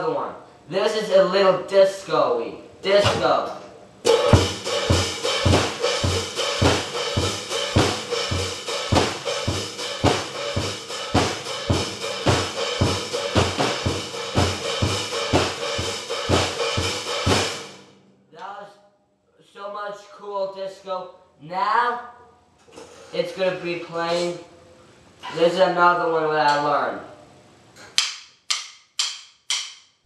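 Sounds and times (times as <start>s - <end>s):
drum kit playing disco beat: 4.1s - 17.8s.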